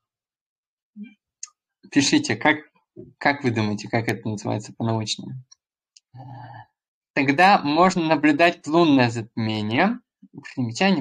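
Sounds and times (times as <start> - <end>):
man speaking: 7.2 - 11.0.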